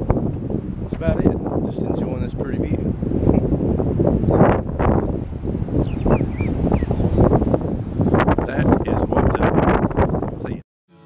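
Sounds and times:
wind buffeting microphone: 0.0 - 10.6
bird chirps: 5.1 - 8.0.

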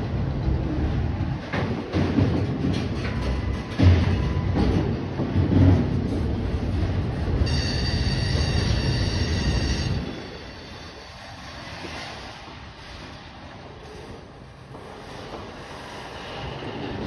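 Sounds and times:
train wheels rumbling on rail: 0.0 - 17.0
wheel squeal: 7.4 - 12.3.

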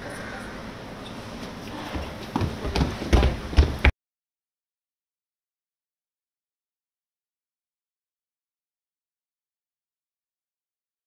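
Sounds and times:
outdoor background noise: 0.0 - 3.9
footsteps on paving: 1.9 - 3.9.

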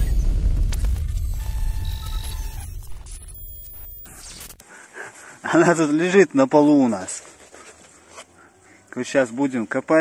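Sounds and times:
deep bass boom: 0.0 - 2.9
brief electronic tones: 1.0 - 4.6.

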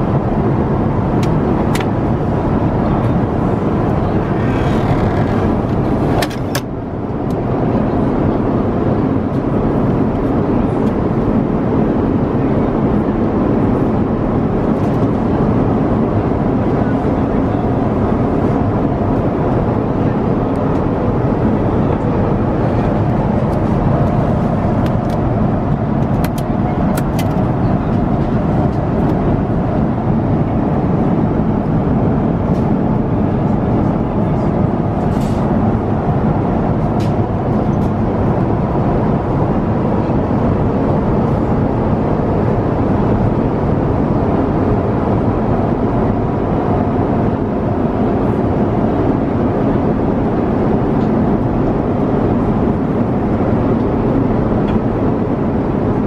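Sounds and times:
airliner cabin roar: 0.0 - 56.0.

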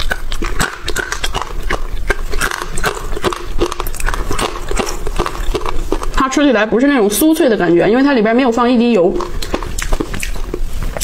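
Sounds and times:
chewing crunchy chickpeas: 0.0 - 6.5, 8.8 - 11.0.

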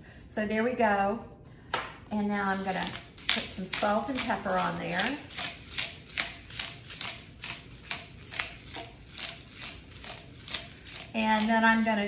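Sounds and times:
seasoning grinder crunching: 2.2 - 12.0.

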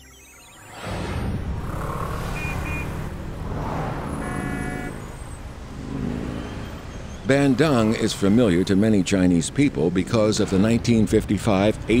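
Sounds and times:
motorcycles and cars passing: 0.8 - 12.0
short horn beeps: 2.3 - 3.1, 4.2 - 5.1
long horn blast: 3.9 - 5.1.

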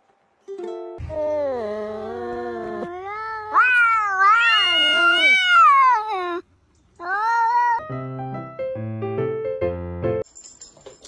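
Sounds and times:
cat meowing: 1.6 - 6.4, 7.0 - 7.9.

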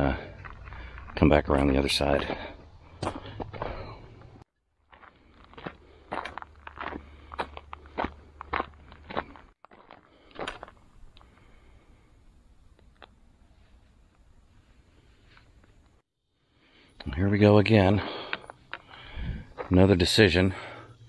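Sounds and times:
footsteps crunching on dirt trail: 0.0 - 11.6, 18.0 - 20.7.

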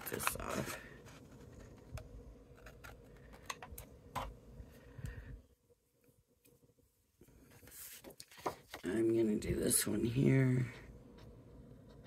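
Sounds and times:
paper rustling: 7.5 - 9.0.

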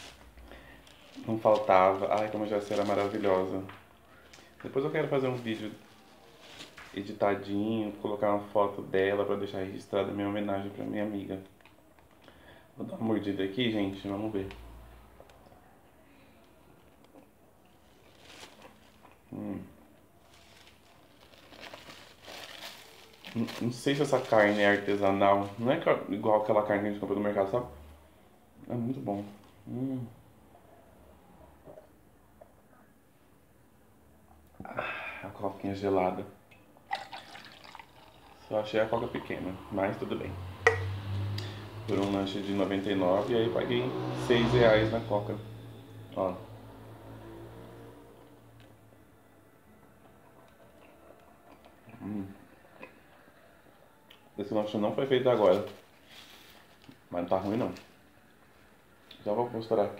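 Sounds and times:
paper wrapper crinkling: 0.0 - 7.2, 17.7 - 19.2, 20.1 - 25.6, 41.8 - 43.3, 55.2 - 58.0.

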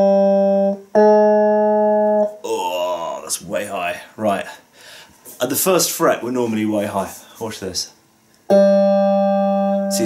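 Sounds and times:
electric guitar note ringing: 0.0 - 3.6, 8.5 - 10.0.

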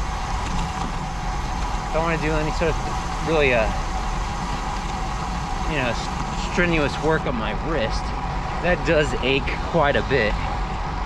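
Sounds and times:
bicycle tyres rolling on pavement: 0.0 - 11.0.

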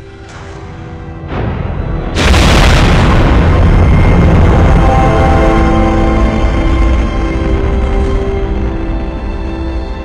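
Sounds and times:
heavy rumble of breaking wreckage: 0.6 - 10.0
loud explosion blast: 1.3 - 7.8.

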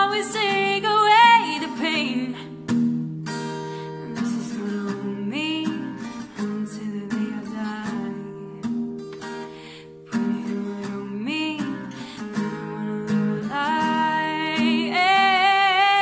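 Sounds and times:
woman singing: 0.0 - 2.6, 3.8 - 9.0, 10.0 - 16.0
acoustic guitar strumming: 0.0 - 16.0.

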